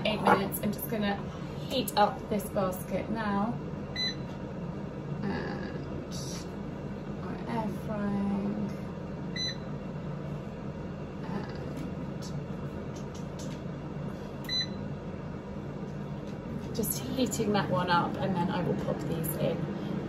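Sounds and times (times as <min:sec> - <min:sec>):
air fryer fan hum: 0:00.0 - 0:20.0.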